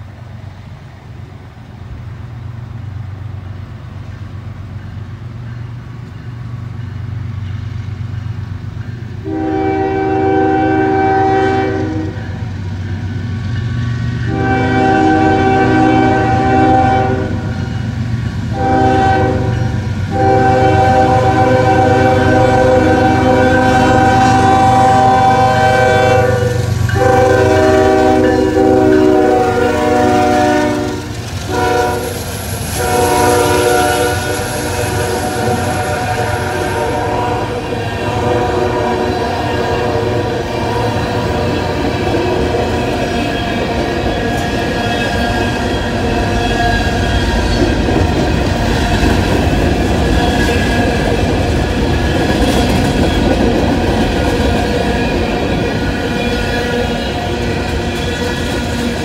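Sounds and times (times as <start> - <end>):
train air horn blasts: 9.2 - 12.4, 14.2 - 17.8, 18.5 - 42.8.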